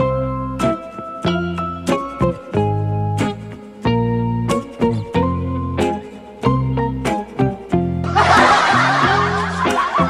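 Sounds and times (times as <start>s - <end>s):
background music: 0.0s - 10.0s
burst of laughter: 8.1s - 10.0s.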